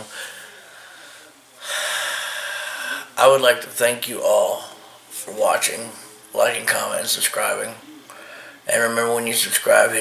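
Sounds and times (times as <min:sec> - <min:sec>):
man drawing noisy breath: 0:00.0 - 0:03.2.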